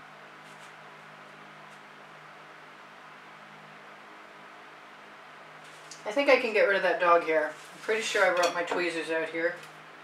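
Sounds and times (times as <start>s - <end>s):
faint background hum and hiss: 0.0s - 10.0s.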